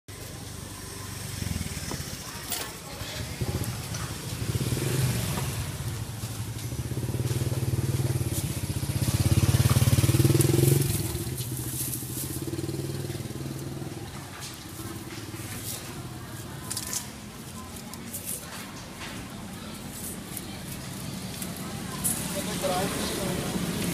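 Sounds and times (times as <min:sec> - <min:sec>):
motorcycle engine running: 0:00.1 - 0:18.6, 0:19.4 - 0:23.9
street noise: 0:00.1 - 0:23.9.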